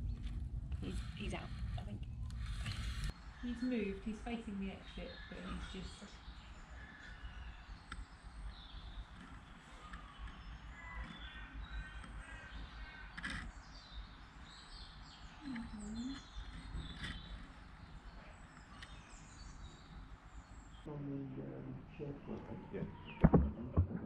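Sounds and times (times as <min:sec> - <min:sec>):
steady low rumble: 0:00.0 - 0:05.1
birds chirping and calling: 0:00.0 - 0:20.9, 0:21.9 - 0:23.8
harsh bird calls: 0:00.0 - 0:23.8.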